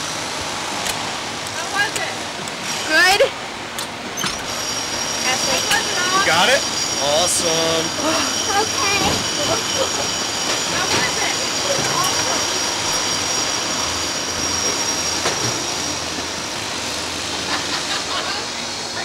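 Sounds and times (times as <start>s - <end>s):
outdoor background noise: 0.0s - 19.0s
thin high whine: 4.2s - 19.0s.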